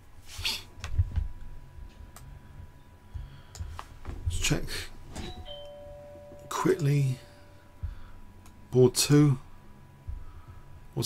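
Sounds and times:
electronic notification chime: 5.2 - 7.6
breathy sound: 7.1 - 8.4.

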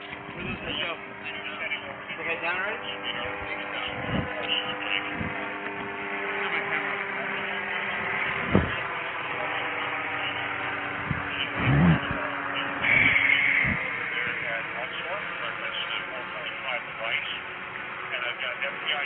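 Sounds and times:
indistinct voices: 0.0 - 17.5
steady mechanical hum: 0.0 - 19.0.

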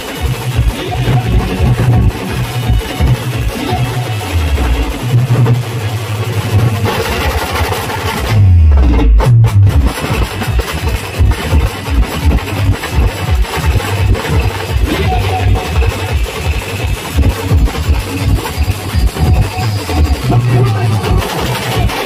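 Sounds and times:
deep falling bass sweep: 0.0 - 22.0
driving drum beat: 0.0 - 22.0
heavy bass: 0.0 - 22.0.

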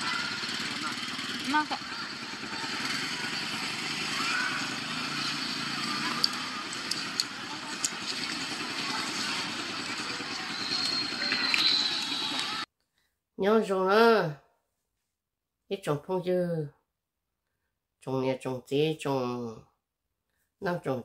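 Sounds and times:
people chattering: 0.0 - 12.6
vehicle engine: 0.0 - 12.7.

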